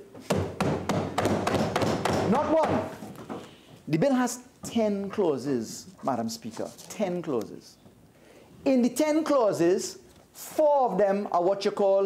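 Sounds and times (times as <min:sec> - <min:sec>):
thumping on wooden desks: 0:00.1 - 0:03.5.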